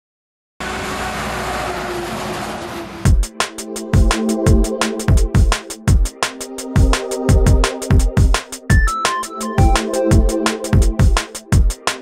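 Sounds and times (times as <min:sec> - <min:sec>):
truck driving along a road: 0:00.6 - 0:03.2.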